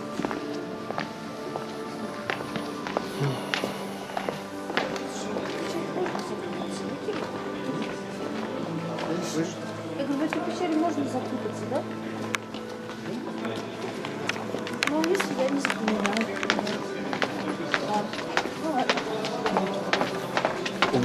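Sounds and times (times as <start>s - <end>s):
footsteps of group walking: 0.0s - 21.0s
indistinct chatter: 0.0s - 21.0s.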